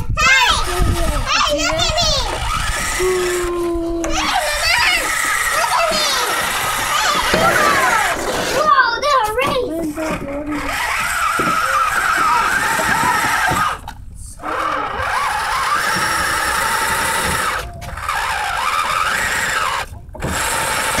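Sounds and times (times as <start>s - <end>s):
electric motor whining: 0.3s - 21.0s.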